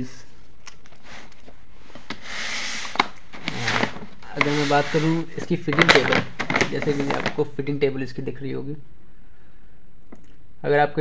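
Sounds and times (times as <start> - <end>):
plastic bag crinkling on wood: 2.9 - 7.5.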